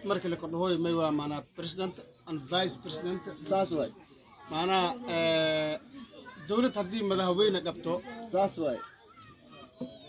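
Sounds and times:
background chatter: 0.0s - 10.0s
children's voices: 3.0s - 10.0s.

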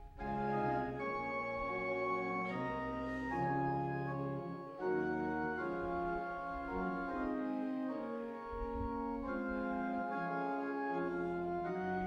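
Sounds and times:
organ playing a slow hymn: 0.0s - 12.0s.

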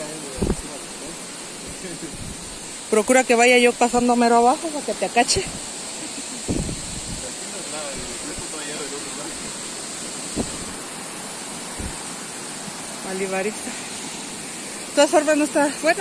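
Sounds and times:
steady outdoor hiss: 0.0s - 16.0s
soft thumps: 10.4s - 10.8s, 11.8s - 12.0s.

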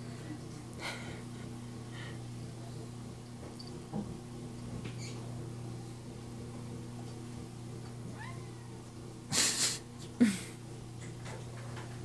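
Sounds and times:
cat meowing faintly: 8.1s - 8.8s.

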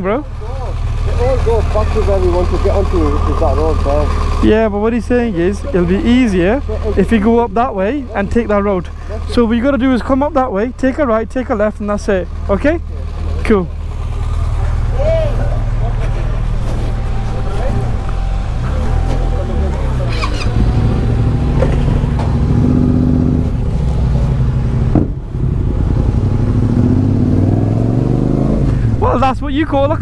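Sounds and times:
motorcycle engines idling and running: 0.0s - 30.0s.

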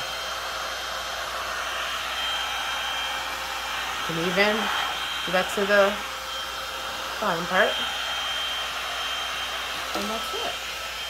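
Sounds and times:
heat gun blowing with high whine: 0.0s - 11.0s.

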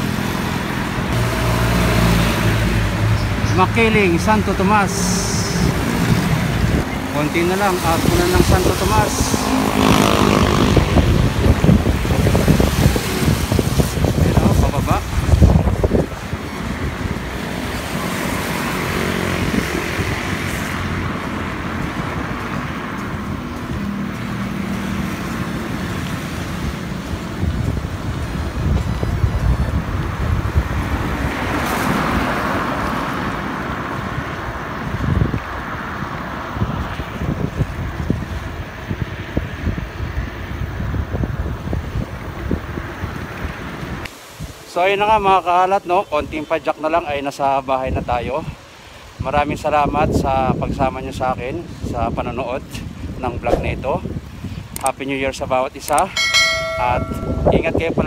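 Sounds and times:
road traffic noise: 0.0s - 58.0s
wind buffeting microphone: 4.8s - 44.6s, 49.1s - 55.0s, 56.2s - 58.0s.

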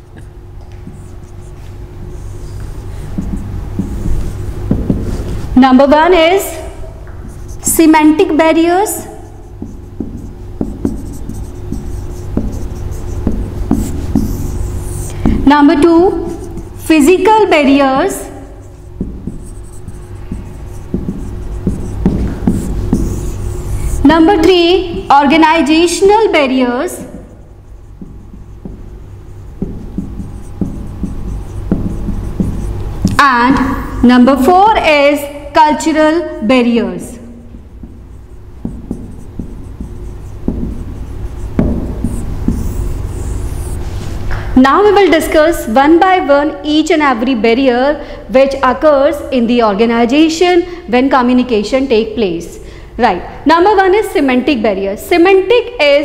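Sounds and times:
marker pen writing on whiteboard: 0.0s - 47.8s
low room hum: 0.0s - 56.0s.

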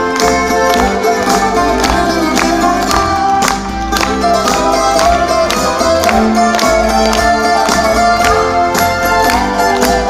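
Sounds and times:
bouzouki plucking melody: 0.0s - 10.0s.

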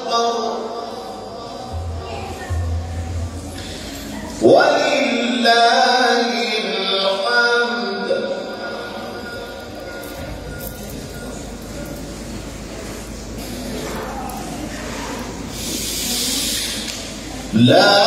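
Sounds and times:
man reciting melismatic chant: 0.0s - 1.8s, 4.4s - 9.5s, 17.5s - 18.0s
low rumbling room noise: 0.0s - 18.0s
breathy hiss: 15.4s - 17.4s.

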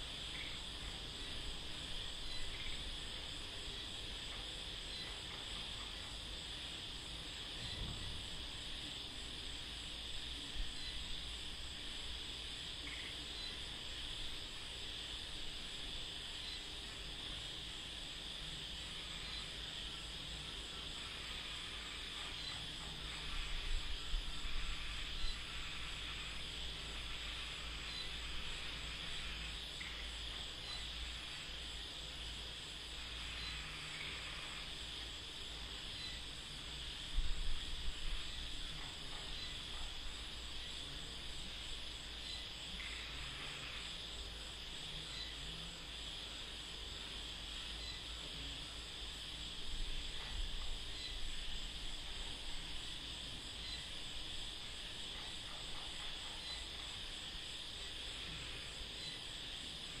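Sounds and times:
faint chirps: 0.0s - 60.0s
insects and frogs chorus: 0.0s - 60.0s.

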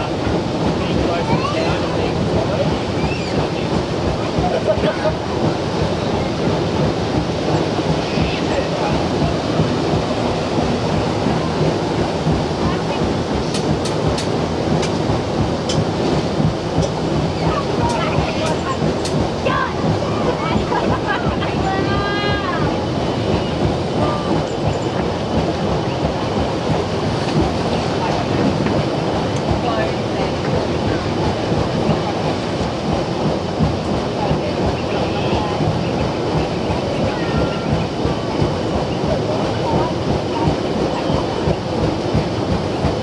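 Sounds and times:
paddle steamer churning clatter: 0.0s - 43.0s.

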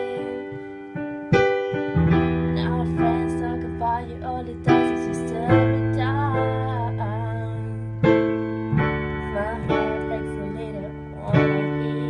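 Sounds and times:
digital piano chords: 0.0s - 12.0s.

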